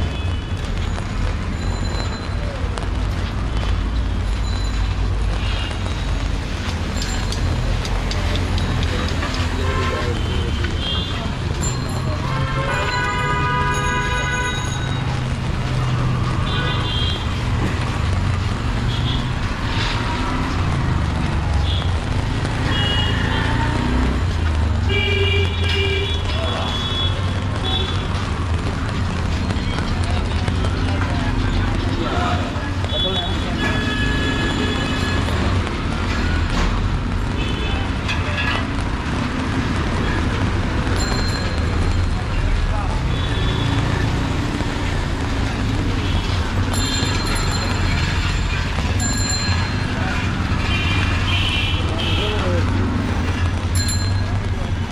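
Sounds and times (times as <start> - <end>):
traffic rumble: 0.0 - 54.9
passers-by talking: 26.1 - 54.9.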